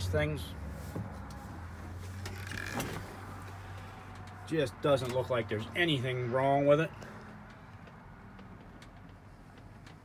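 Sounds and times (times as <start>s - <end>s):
lever creak and click: 2.2s - 3.0s.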